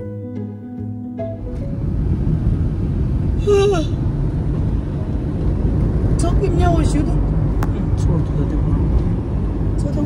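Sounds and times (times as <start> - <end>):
car road and engine rumble: 0.0 - 10.0.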